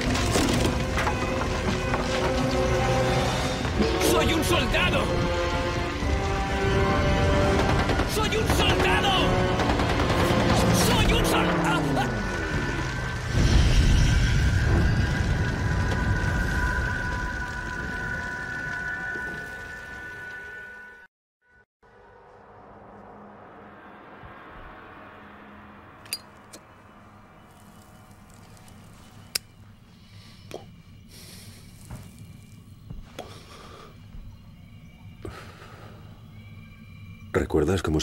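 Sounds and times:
film soundtrack music: 0.0s - 21.1s, 21.8s - 38.0s.

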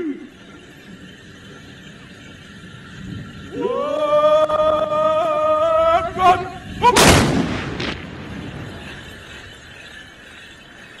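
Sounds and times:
musket volley blast: 7.0s - 8.2s.

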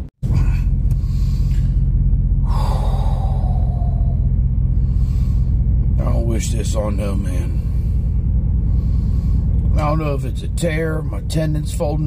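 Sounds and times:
low car cabin rumble: 0.0s - 12.0s
man sighing heavily: 0.2s - 1.7s, 2.4s - 4.3s.

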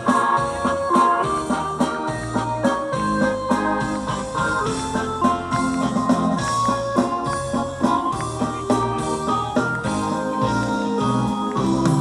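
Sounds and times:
bass guitar: 0.0s - 12.0s
drums: 0.0s - 12.0s
electronic keyboard chords: 0.0s - 12.0s.

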